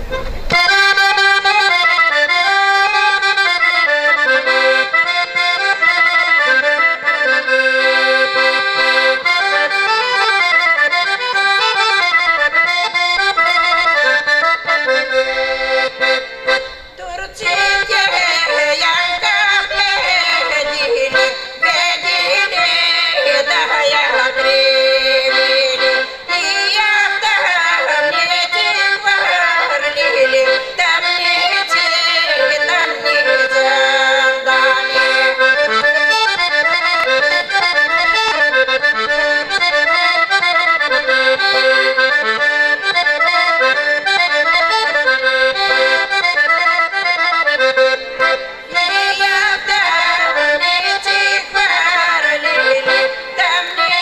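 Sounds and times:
piano accordion folk tune: 0.0s - 54.0s.

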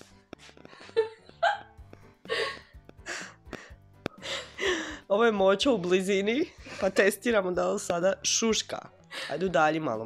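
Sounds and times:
soft music: 0.0s - 10.0s
woman laughing: 0.8s - 1.7s.

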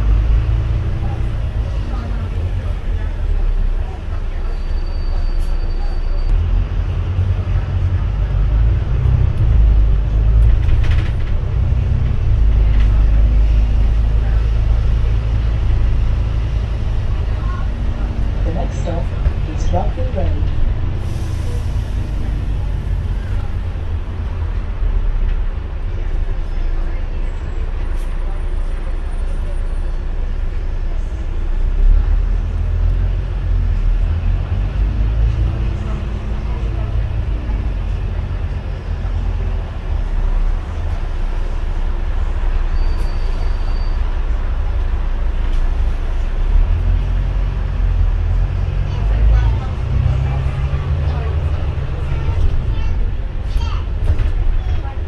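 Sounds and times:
bus engine and road rumble: 0.0s - 55.0s.

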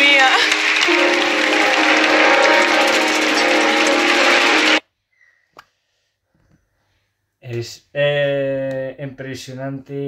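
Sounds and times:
audience applause: 0.0s - 4.8s
music: 0.0s - 4.8s.

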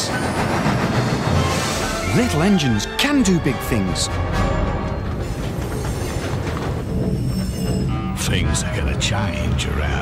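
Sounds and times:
metallic wheel squeal: 5.2s - 8.3s.

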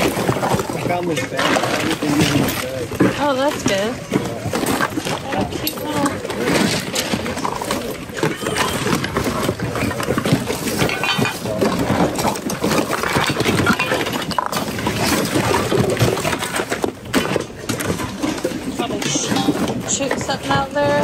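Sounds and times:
items rustling and clattering in bin: 0.0s - 21.0s.

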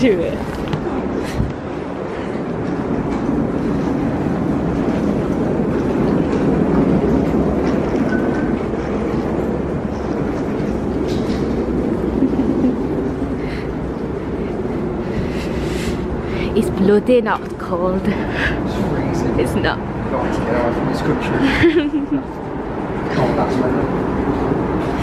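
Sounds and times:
suitcase wheels rumbling on tarmac: 0.0s - 25.0s.

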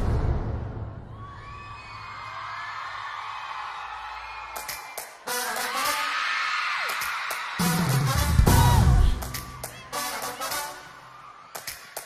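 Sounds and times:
crowd screaming and cheering: 1.0s - 12.0s.

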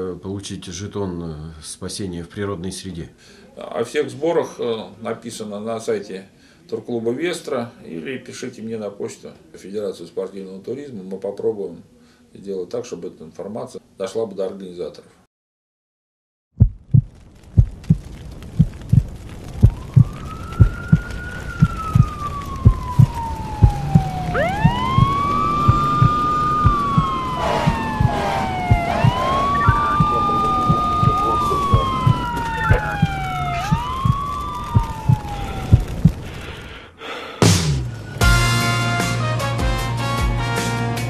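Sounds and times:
heartbeat beating steadily: 16.6s - 36.2s
siren wails: 19.4s - 36.3s.

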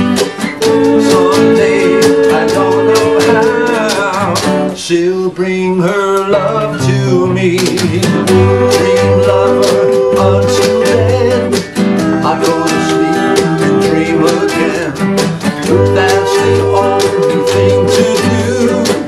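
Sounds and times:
ukulele playing: 0.0s - 4.8s, 6.4s - 19.0s
acoustic guitar strumming: 0.0s - 19.0s.

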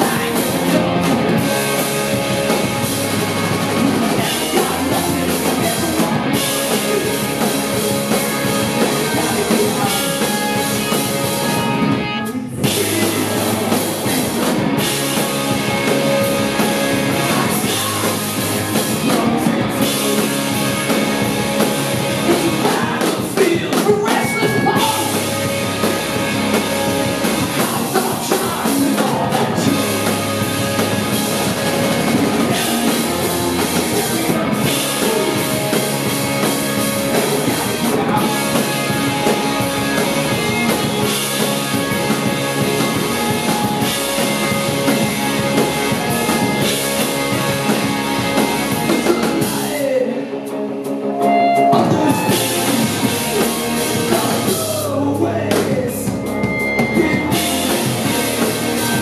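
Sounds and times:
bass guitar: 0.0s - 59.0s
drum kit: 0.0s - 59.0s
electric guitars: 0.0s - 59.0s
punk rock band playing live: 0.0s - 59.0s.

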